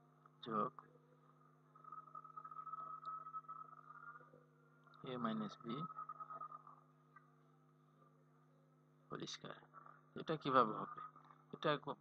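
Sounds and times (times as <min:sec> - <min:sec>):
high-pitched electrical whine: 0:00.0 - 0:08.2
low steady hum: 0:00.0 - 0:12.0.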